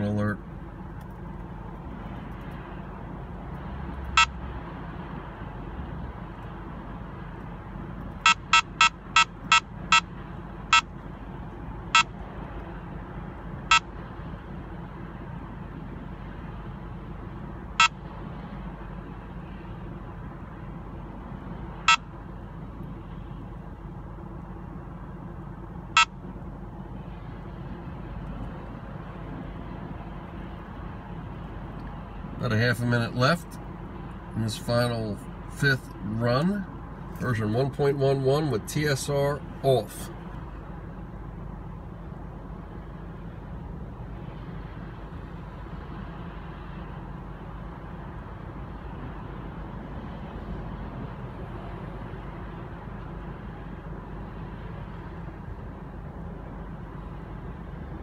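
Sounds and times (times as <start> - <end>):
road noise inside moving car: 0.0 - 58.0.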